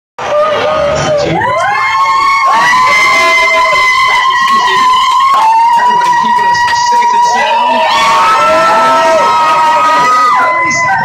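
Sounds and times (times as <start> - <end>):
group of people cheering: 0.2 - 11.0
high held shouts: 0.2 - 11.0.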